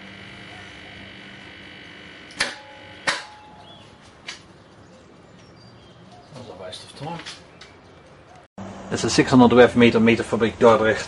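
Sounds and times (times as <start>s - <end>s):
transformer humming: 0.0s - 4.0s.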